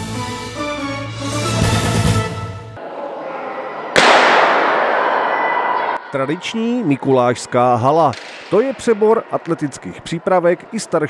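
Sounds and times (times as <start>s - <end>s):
sports hall noise: 2.8s - 11.0s
starting gun shot: 4.0s - 5.2s.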